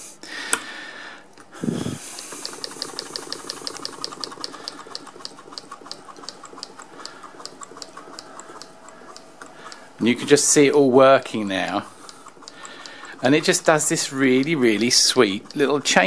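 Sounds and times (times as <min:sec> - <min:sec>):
sewing machine needle ticking: 0:01.8 - 0:16.0.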